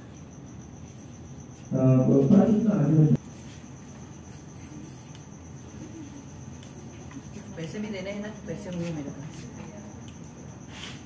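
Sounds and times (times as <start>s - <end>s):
faint high-pitched chirring tone: 0.0s - 11.0s.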